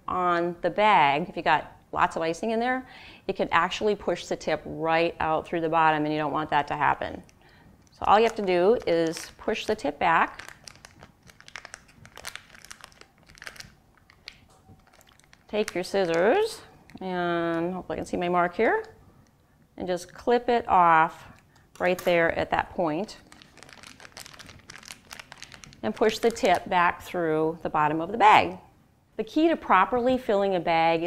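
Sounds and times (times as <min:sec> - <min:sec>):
plastic bag crinkling: 0:07.2 - 0:18.9, 0:23.0 - 0:26.7.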